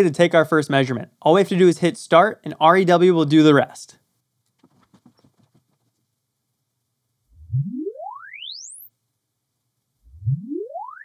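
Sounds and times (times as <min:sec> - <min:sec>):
sine sweep tone rising: 0:07.3 - 0:08.9, 0:10.0 - 0:11.0.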